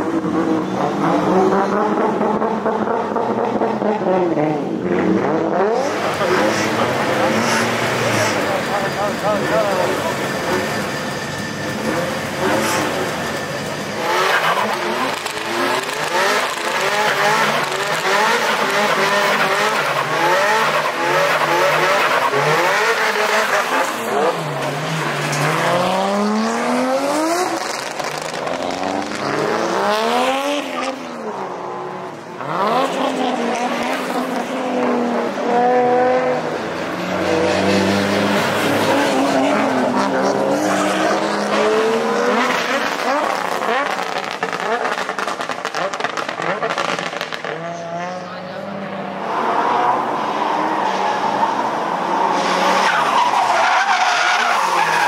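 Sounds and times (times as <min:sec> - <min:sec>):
car engines revving: 0:00.0 - 0:55.0
tyres squealing on asphalt: 0:05.0 - 0:55.0.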